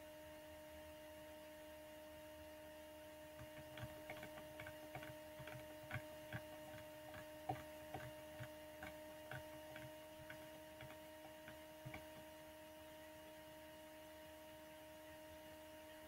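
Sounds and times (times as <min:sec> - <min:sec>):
electrical hum: 0:00.0 - 0:16.0
mouse scroll wheel clicks: 0:03.4 - 0:12.3.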